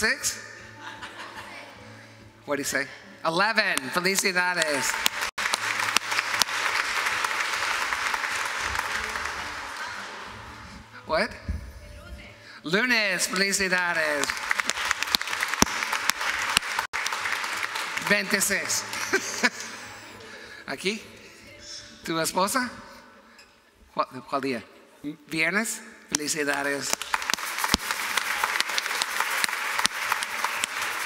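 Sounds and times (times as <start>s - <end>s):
crowd applauding: 3.8s - 10.6s, 13.2s - 20.3s, 26.2s - 31.0s.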